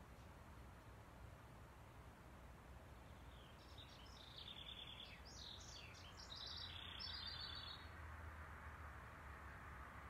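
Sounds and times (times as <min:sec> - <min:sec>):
songbird chirping and trilling: 0:02.8 - 0:08.1.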